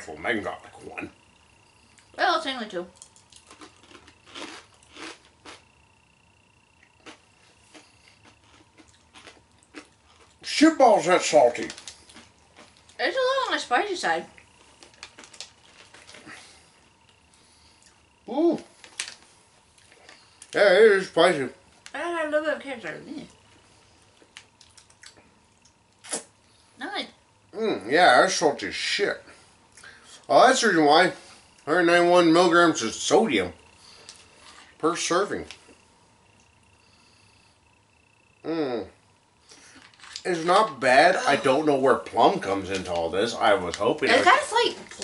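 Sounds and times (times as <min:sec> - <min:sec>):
faint chewing: 0:02.9 - 0:10.5, 0:11.5 - 0:13.0, 0:14.3 - 0:20.6, 0:23.2 - 0:26.6
crunchy snack crunches: 0:03.0 - 0:05.7, 0:06.8 - 0:13.0, 0:14.4 - 0:20.6, 0:24.2 - 0:26.3.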